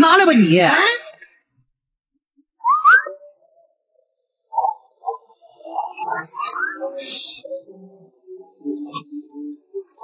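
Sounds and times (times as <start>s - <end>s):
rising whistle glides: 2.6s - 3.2s.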